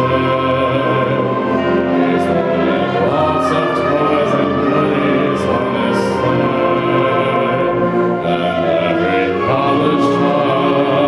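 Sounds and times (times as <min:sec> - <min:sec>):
concert band playing sustained chords: 0:00.0 - 0:11.0.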